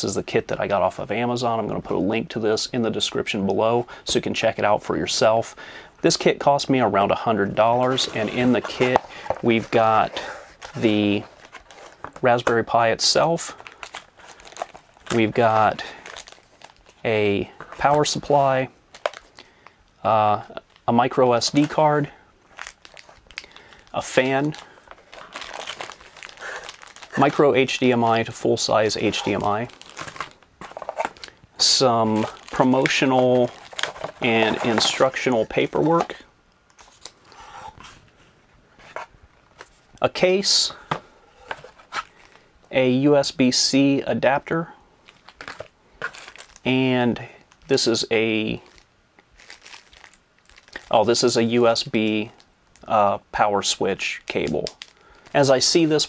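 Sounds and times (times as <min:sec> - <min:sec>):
plastic bags crinkling: 0:07.6 - 0:19.7, 0:20.5 - 0:37.3, 0:41.4 - 0:42.5, 0:45.0 - 0:46.8, 0:47.6 - 0:52.9, 0:54.3 - 0:56.0.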